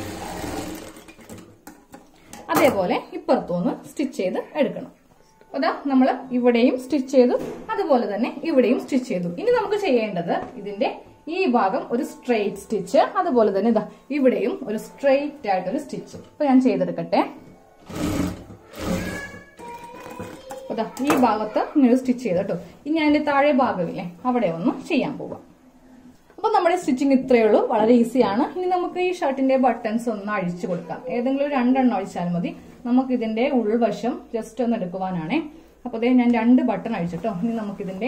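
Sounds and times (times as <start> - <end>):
sewing machine stitching: 0.0 - 1.4, 17.8 - 20.4.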